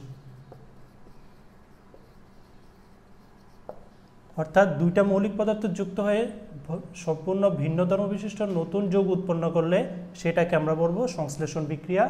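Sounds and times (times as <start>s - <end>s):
marker scratching on whiteboard: 0.0s - 4.2s.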